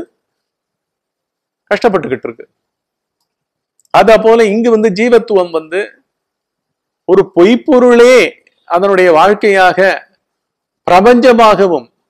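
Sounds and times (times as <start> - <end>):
man talking: 1.7 - 2.5, 3.9 - 6.0, 7.1 - 10.1, 10.9 - 11.9.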